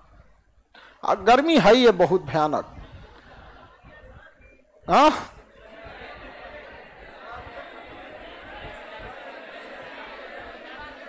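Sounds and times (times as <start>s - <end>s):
faint room murmur: 0.0s - 11.0s.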